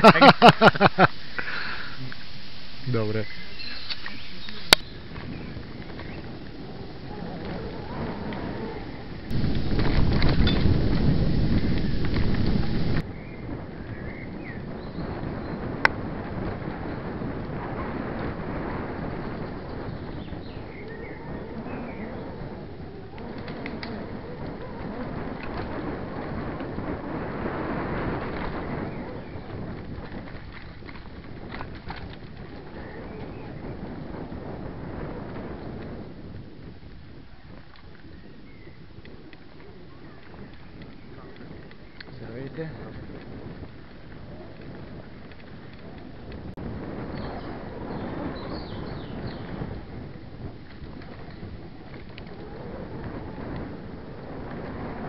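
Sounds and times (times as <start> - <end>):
birds chirping: 0.0 - 15.7, 19.2 - 25.3, 28.5 - 29.8, 38.0 - 39.0, 47.0 - 49.7
wind on microphone: 0.0 - 55.0
bike tyres rumbling on dirt: 2.9 - 55.0
bike rattle: 9.2 - 13.0.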